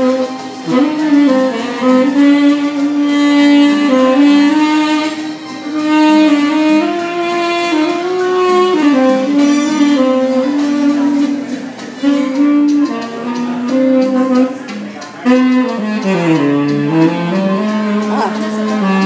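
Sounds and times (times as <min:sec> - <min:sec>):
tenor saxophone slow melody: 0:00.0 - 0:19.0.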